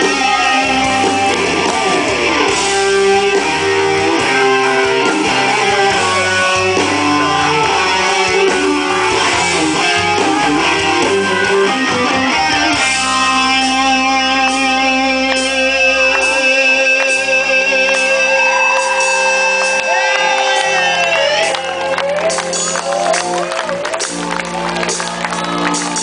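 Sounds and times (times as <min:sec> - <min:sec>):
electric guitar lead line: 0:00.0 - 0:26.0
live rock band: 0:00.0 - 0:26.0.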